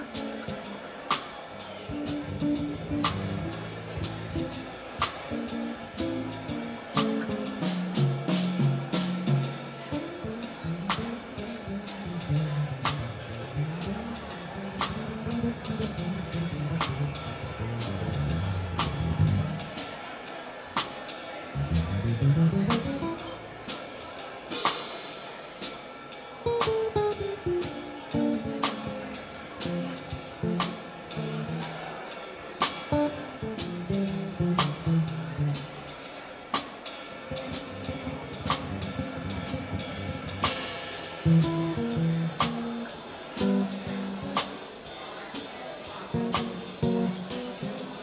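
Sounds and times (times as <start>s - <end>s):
drum kit cymbals: 0.0s - 48.0s
bass guitar melodic line: 1.9s - 4.6s, 5.4s - 19.6s, 21.6s - 23.3s, 29.6s - 31.8s, 33.0s - 35.6s, 37.4s - 40.5s, 41.2s - 44.3s, 46.2s - 48.0s.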